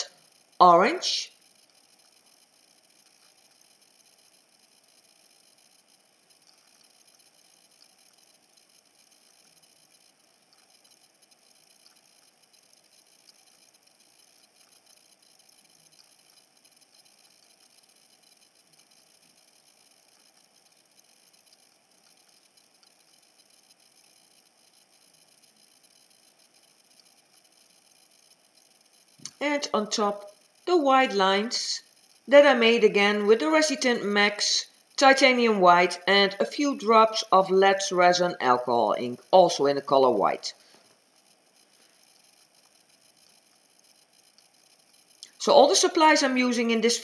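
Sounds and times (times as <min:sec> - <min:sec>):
faint ticks: 0:00.0 - 0:00.6, 0:01.3 - 0:30.7, 0:31.8 - 0:32.3, 0:33.8 - 0:35.0, 0:40.5 - 0:46.9.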